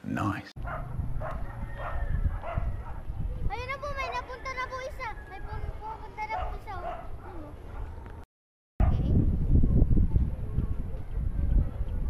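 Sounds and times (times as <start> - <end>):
wind buffeting microphone: 0.6 - 8.2, 8.8 - 12.0.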